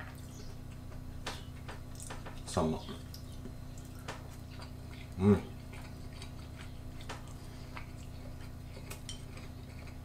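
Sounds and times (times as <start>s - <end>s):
steady low hum: 0.0s - 10.0s
chewing mouth noises: 0.1s - 10.0s.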